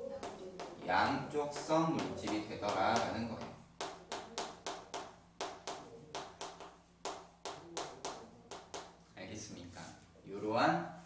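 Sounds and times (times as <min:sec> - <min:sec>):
chalk tapping on chalkboard: 0:00.0 - 0:09.2.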